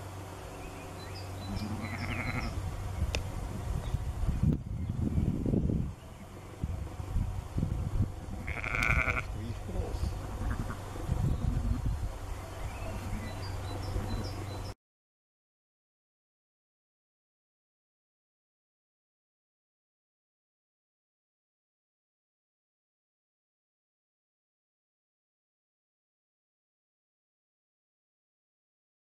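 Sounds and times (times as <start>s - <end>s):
low buffeting noise: 0.0s - 14.8s
sheep bleating: 1.5s - 2.6s, 8.3s - 9.5s, 10.2s - 10.8s.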